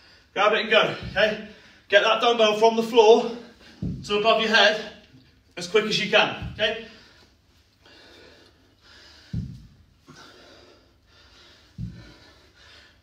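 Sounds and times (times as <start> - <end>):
dumbbell thudding on floor: 3.8 - 4.2, 9.2 - 9.8, 11.8 - 12.3
man breathing with effort: 6.8 - 13.0.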